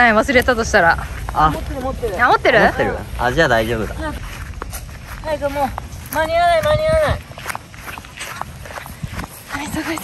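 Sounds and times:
footsteps on grass: 0.0s - 10.0s.

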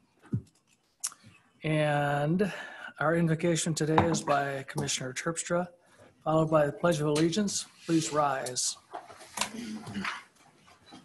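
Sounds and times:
office chairs creaking: 8.9s - 11.0s.

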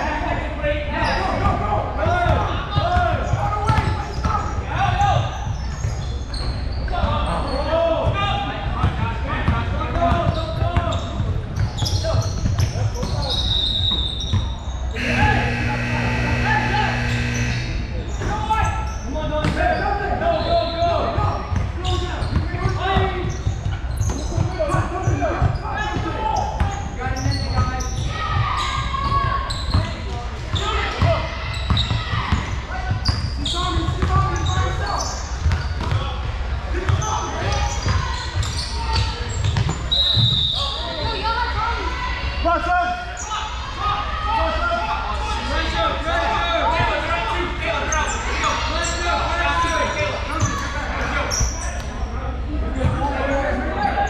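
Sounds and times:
shouts and chatter: 12.8s - 23.2s, 24.5s - 35.3s, 36.6s - 54.0s.

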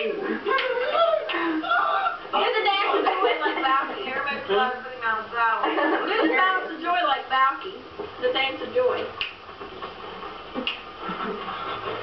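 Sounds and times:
short sharp snaps: 9.2s - 9.4s, 10.6s - 10.9s.

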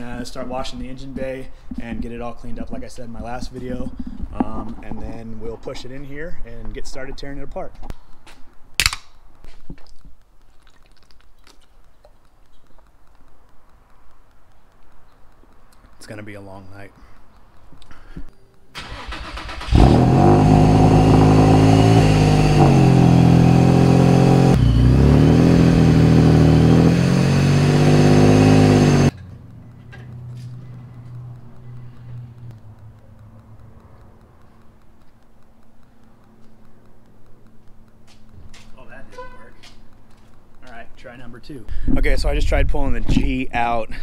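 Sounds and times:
car engine starting and revving: 18.8s - 29.2s
faint steady engine hum: 29.1s - 41.9s.

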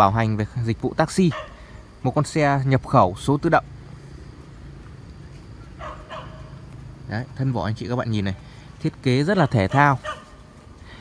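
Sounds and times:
low steady hum: 0.0s - 11.0s
dog barking: 1.2s - 1.6s, 5.8s - 6.6s, 9.4s - 10.4s.

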